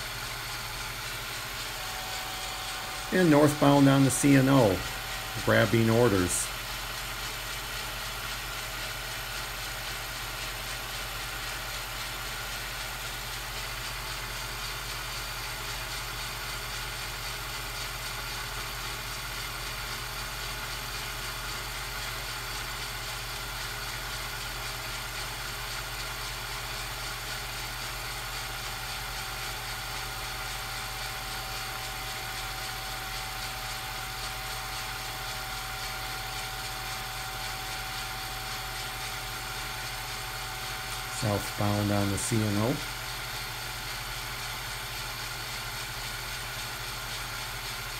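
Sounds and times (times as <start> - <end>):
electrical hum: 0.0 - 9.9, 30.3 - 45.2.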